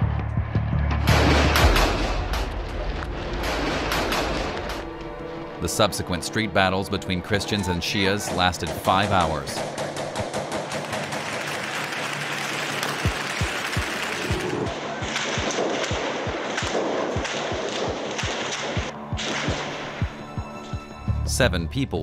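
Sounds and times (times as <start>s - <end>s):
gunshots: 1.0s - 4.9s, 8.2s - 19.8s
steady noisy din: 8.3s - 20.2s.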